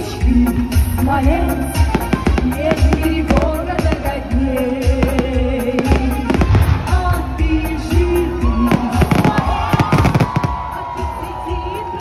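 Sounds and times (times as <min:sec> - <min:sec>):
loud music with melody: 0:00.0 - 0:12.0
fireworks bangs and crackles: 0:01.7 - 0:07.3, 0:08.6 - 0:11.1.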